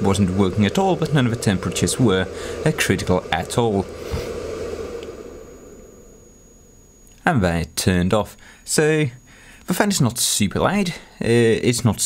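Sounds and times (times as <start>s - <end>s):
power supply cooling fan blowing: 0.0s - 12.0s.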